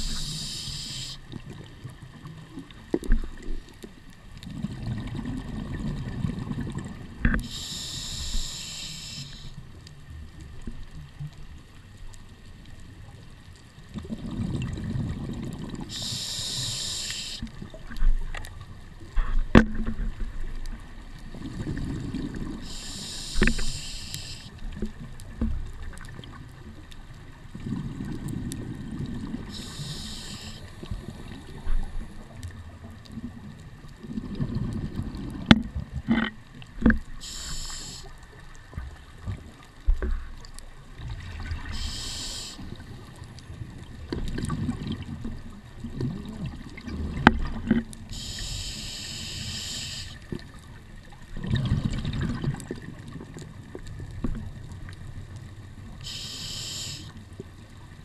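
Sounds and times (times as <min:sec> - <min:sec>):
regulator inhale hiss: 0:00.0 - 0:01.3, 0:07.4 - 0:09.7, 0:15.8 - 0:17.5, 0:22.6 - 0:24.6, 0:29.4 - 0:31.4, 0:37.2 - 0:38.4, 0:41.6 - 0:42.9, 0:48.1 - 0:50.3, 0:56.0 - 0:57.2
exhaled bubbles rumbling: 0:04.4 - 0:07.5, 0:13.9 - 0:15.9, 0:21.3 - 0:22.8, 0:27.5 - 0:30.0, 0:30.7 - 0:36.1, 0:38.6 - 0:42.0, 0:42.7 - 0:48.1, 0:50.3 - 0:54.7.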